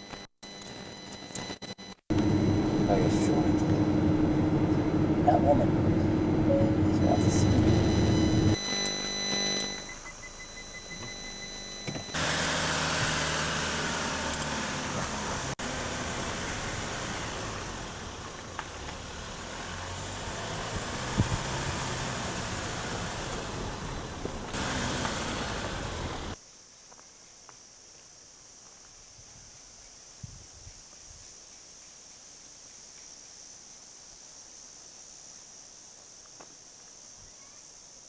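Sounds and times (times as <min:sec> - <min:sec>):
car engine and road noise: 0:02.0 - 0:26.4.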